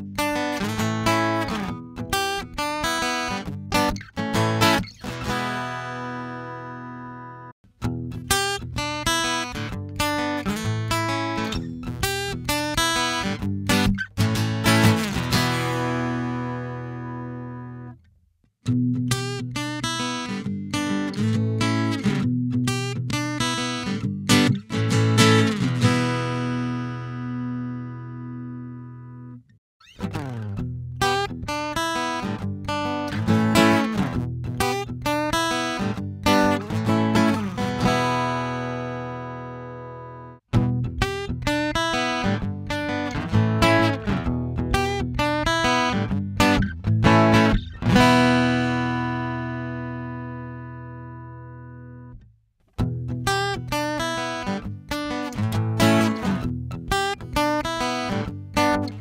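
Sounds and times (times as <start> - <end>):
acoustic guitar picking: 0.0 - 18.1, 18.7 - 52.2, 52.8 - 59.0
guitar chord ringing out: 47.5 - 52.1.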